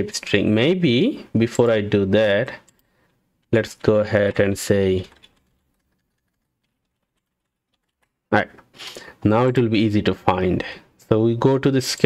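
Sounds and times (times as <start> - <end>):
computer keyboard keystrokes: 2.6 - 8.2.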